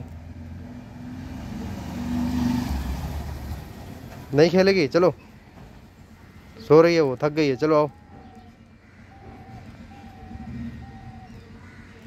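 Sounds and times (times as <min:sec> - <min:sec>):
vehicle engine passing by: 0:00.0 - 0:04.3, 0:09.2 - 0:11.5.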